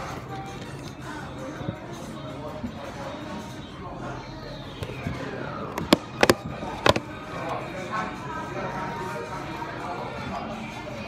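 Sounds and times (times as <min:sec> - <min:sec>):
restaurant chatter: 0:00.0 - 0:11.0
knocks on cardboard bucket: 0:05.8 - 0:07.0.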